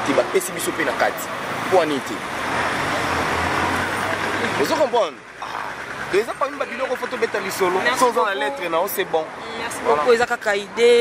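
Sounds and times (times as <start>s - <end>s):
vehicle driving past: 0.6s - 8.2s.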